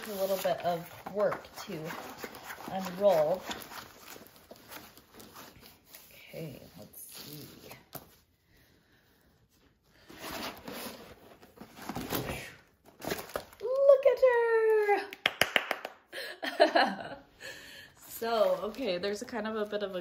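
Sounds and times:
canvas and plastic film crinkling: 0.0s - 7.8s, 18.1s - 20.0s.

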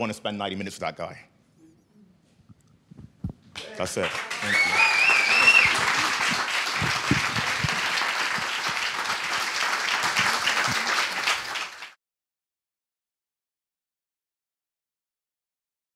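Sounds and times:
audience applauding: 3.6s - 12.0s.

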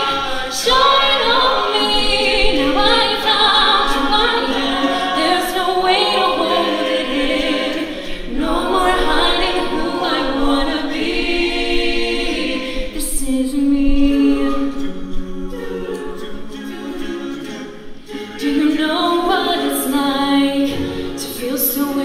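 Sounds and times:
female lead voice singing: 0.0s - 7.5s, 12.8s - 16.4s, 18.4s - 22.0s
backing vocal harmonies: 0.0s - 22.0s.

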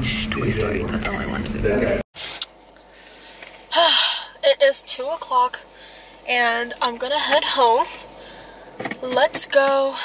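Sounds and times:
woman speaking: 3.7s - 5.7s, 6.3s - 8.1s, 9.0s - 10.0s.

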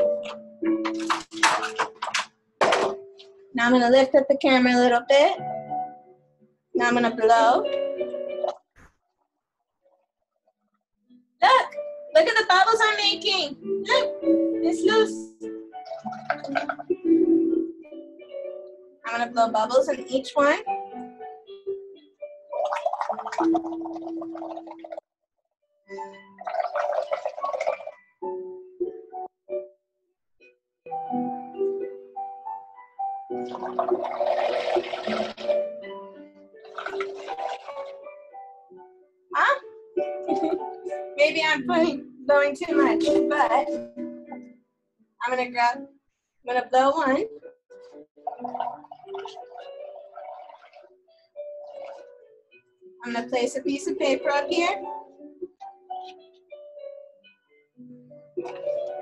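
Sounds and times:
background music: 0.0s - 8.7s, 11.1s - 25.0s, 25.9s - 29.8s, 30.9s - 59.0s
bubbling through a straw: 15.9s - 17.0s, 22.5s - 25.0s, 26.4s - 28.1s, 33.4s - 35.6s, 36.6s - 38.0s, 48.3s - 50.9s.

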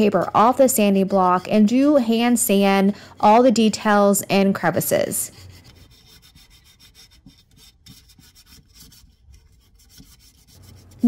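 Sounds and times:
sandpaper scratching on wood: 0.0s - 3.5s, 5.3s - 11.0s.

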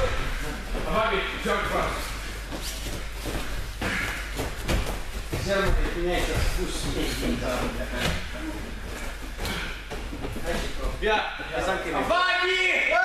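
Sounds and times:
indistinct voices in echoing hall: 0.0s - 13.0s.

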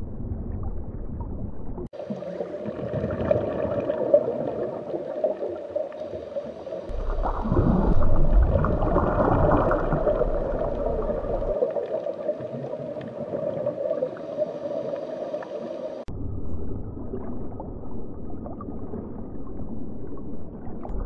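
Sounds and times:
deep underwater rumble: 0.0s - 21.0s
muffled underwater gurgling: 1.5s - 16.1s.

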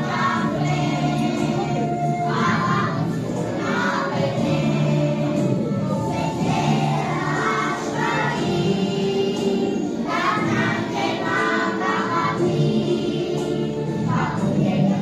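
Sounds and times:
backing music: 0.0s - 15.0s
children singing: 0.0s - 15.0s.

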